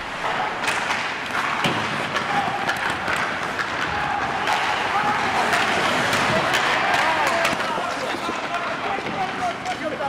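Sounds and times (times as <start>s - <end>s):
skate blades scraping ice: 0.0s - 10.0s
sticks clacking on pucks: 0.0s - 10.0s.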